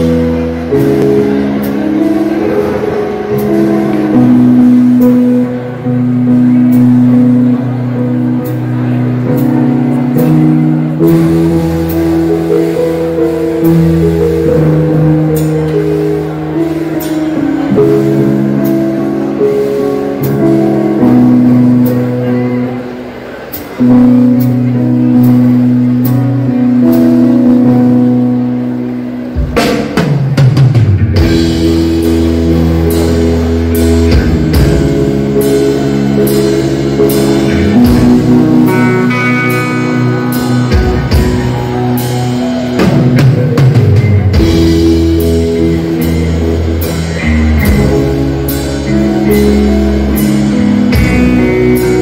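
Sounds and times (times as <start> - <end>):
rock band playing slow ballad: 0.0 - 52.0.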